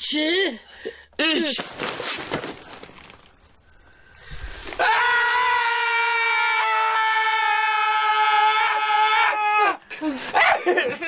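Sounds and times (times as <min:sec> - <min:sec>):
man screaming: 0:04.8 - 0:09.8.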